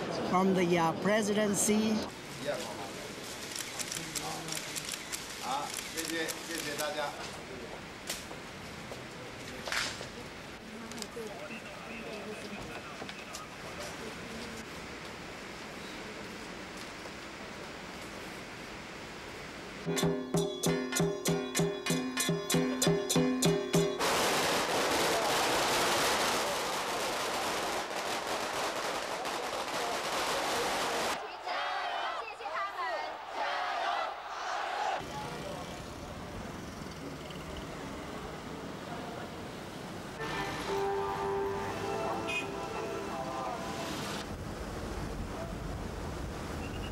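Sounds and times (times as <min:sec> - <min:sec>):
firecrackers crackling: 0:23.9 - 0:31.2.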